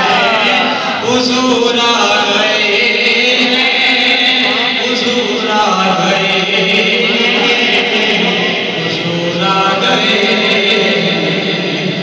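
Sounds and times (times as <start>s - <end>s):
man chanting devotional verses: 0.0s - 12.0s.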